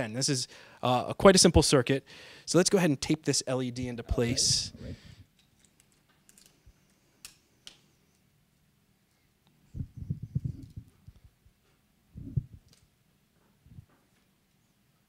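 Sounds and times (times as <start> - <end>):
small parts clicking on wood: 5.4 - 8.2.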